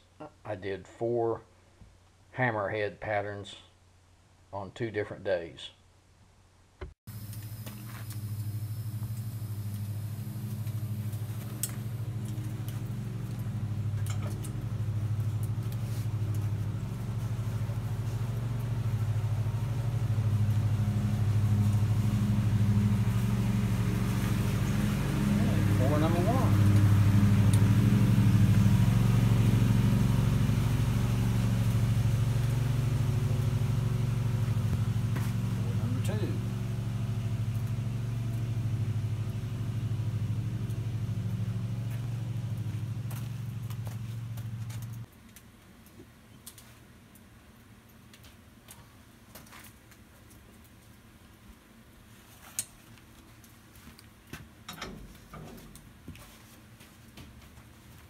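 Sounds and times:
low mechanical drone: 7.1s - 45.1s.

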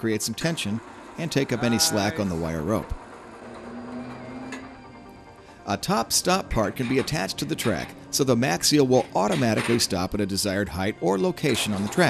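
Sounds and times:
hoist motor humming: 0.0s - 12.0s.

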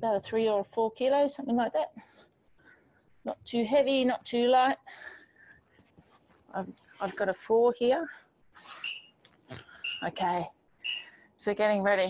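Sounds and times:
bird chirping: 8.7s - 10.2s, 10.8s - 11.2s.

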